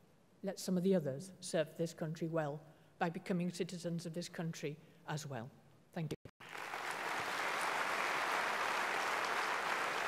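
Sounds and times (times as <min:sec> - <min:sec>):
audience applauding: 0:06.4 - 0:10.0.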